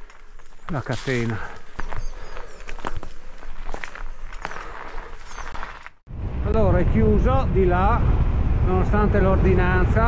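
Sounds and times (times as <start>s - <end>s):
footsteps crunching on gravel: 0.0s - 6.0s.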